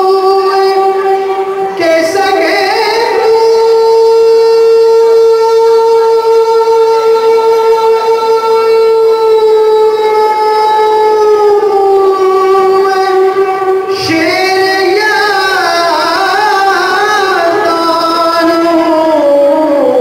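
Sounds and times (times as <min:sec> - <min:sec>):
man singing a long note: 0:00.0 - 0:20.0.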